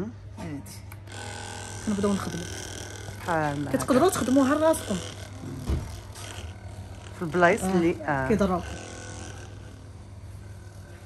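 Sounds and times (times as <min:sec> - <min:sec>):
massage gun buzzing: 0:00.9 - 0:11.0.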